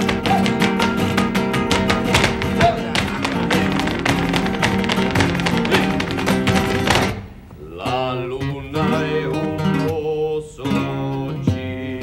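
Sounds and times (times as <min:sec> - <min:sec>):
heels tapping on hard floor: 0:00.0 - 0:07.3
flamenco acoustic guitar: 0:00.0 - 0:12.0.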